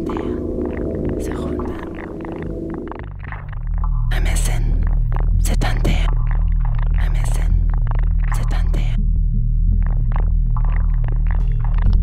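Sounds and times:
processed voice-like sounds: 0:00.0 - 0:02.7, 0:07.0 - 0:07.7, 0:08.3 - 0:09.0
low electronic drone: 0:00.0 - 0:12.0.

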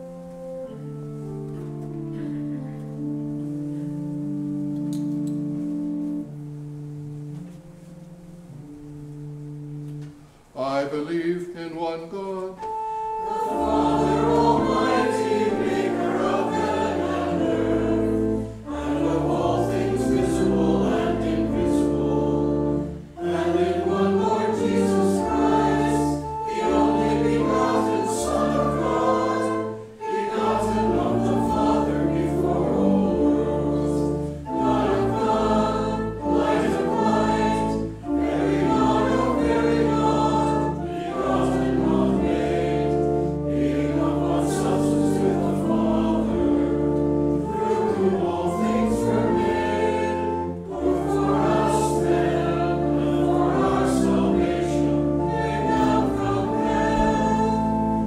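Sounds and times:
organ and voices singing hymn: 0:00.0 - 0:58.0.

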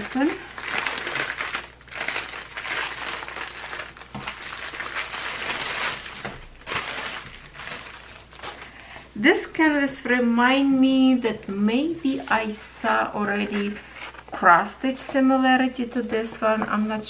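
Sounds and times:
plastic packaging crinkling: 0:00.0 - 0:08.8.

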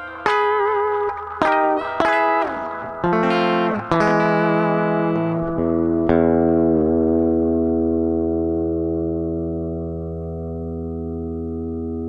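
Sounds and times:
electric guitar chord ringing: 0:00.0 - 0:12.0.

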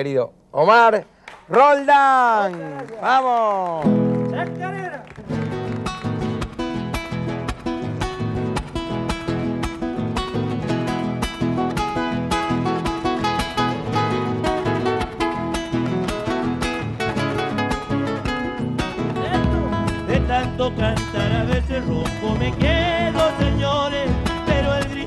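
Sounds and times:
acoustic guitar strumming: 0:03.8 - 0:25.0.

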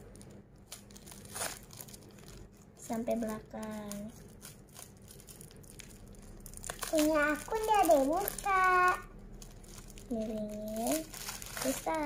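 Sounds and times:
plastic wrapper crinkling and tearing: 0:00.0 - 0:12.0.

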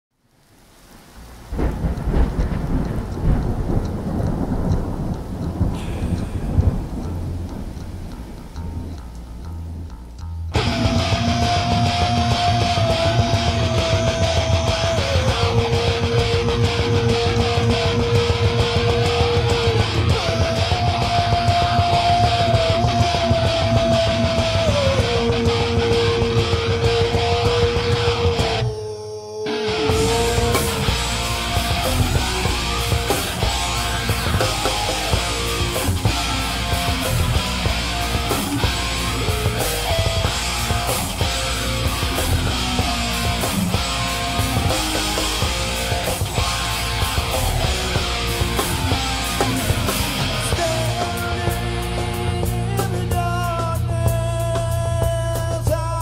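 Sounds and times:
steady rain: 0:00.1 - 0:28.5, 0:29.7 - 0:52.6
rolling thunder: 0:00.8 - 0:09.9
loud thunderclap: 0:01.1 - 0:09.8
heavy metal music: 0:01.2 - 0:56.0
long held high note: 0:28.4 - 0:37.3.

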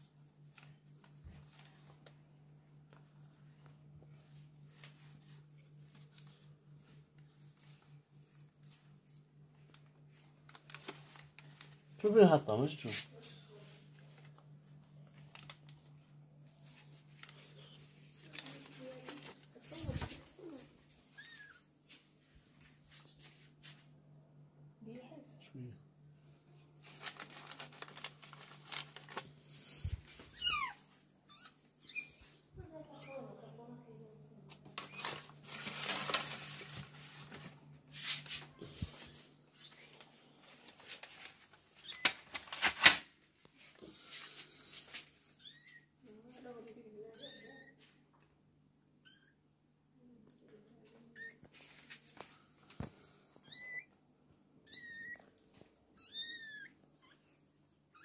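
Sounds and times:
cloth and bedding rustling: 0:00.5 - 0:23.9, 0:26.7 - 0:31.1, 0:34.9 - 0:41.8.

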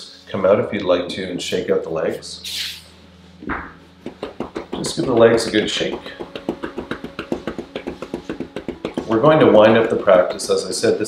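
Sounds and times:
legs patting yoga mat: 0:03.4 - 0:10.9.

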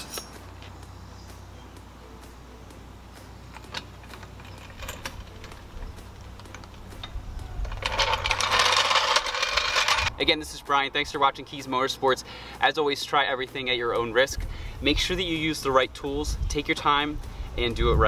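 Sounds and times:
wind rumble on microphone: 0:06.9 - 0:08.5, 0:14.3 - 0:18.0
floor jack scraping across asphalt: 0:07.6 - 0:10.1.

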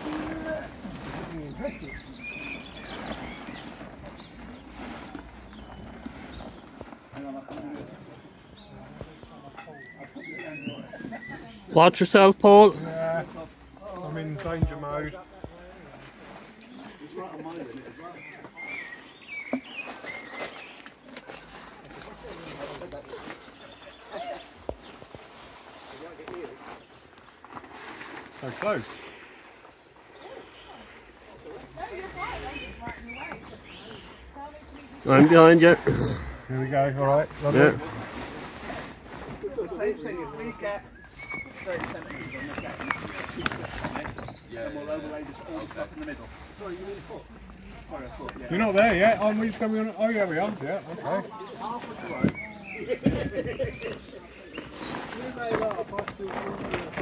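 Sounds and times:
faint scattered voices: 0:00.0 - 0:27.5
people talking indistinctly: 0:00.0 - 0:57.0.

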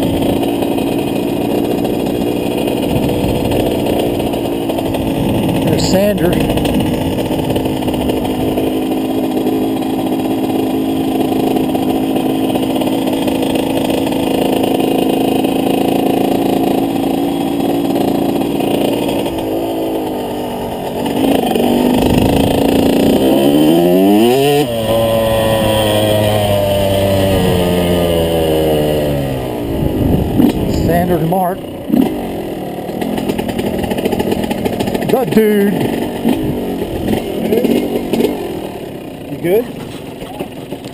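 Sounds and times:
dirt bike engine revving: 0:00.0 - 0:40.9.

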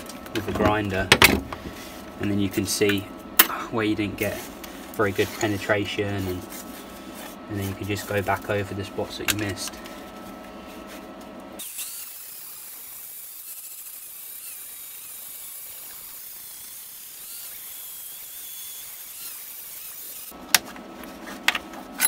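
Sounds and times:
angle grinder grinding steel: 0:11.6 - 0:20.4.

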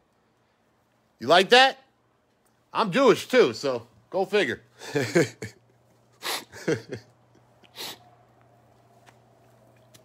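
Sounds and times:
faint low hum: 0:03.8 - 0:10.0.

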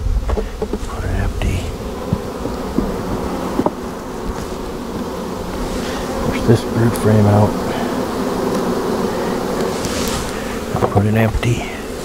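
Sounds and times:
hive frame scraping: 0:00.0 - 0:12.0
honeybees humming: 0:00.0 - 0:12.0
light wooden knocks: 0:00.3 - 0:01.0, 0:02.0 - 0:05.6, 0:10.7 - 0:11.5.

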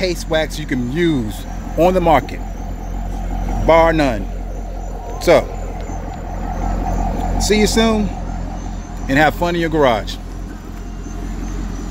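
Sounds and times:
car engine idling: 0:00.0 - 0:11.9.

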